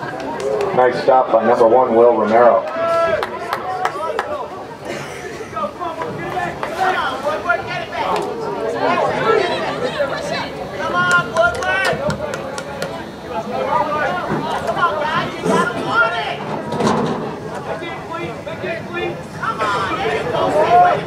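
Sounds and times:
people talking and calling out: 0.0s - 21.0s.

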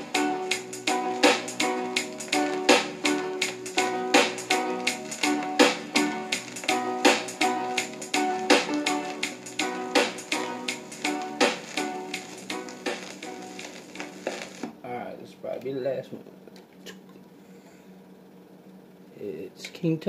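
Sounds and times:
reggae dub music from a record player: 0.0s - 14.7s.

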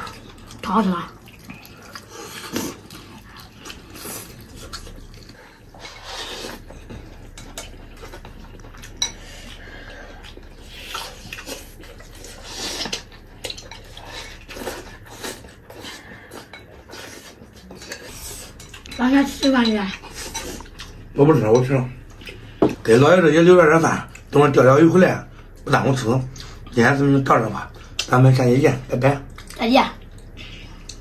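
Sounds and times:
chewing and mouth noises: 0.0s - 21.2s, 29.1s - 31.0s.

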